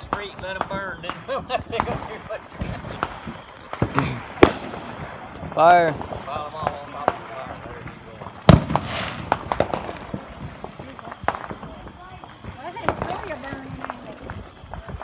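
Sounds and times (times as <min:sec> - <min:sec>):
firework bang: 0:00.0 - 0:15.0
fireworks crackling: 0:00.0 - 0:15.0
small firework pops: 0:00.0 - 0:15.0.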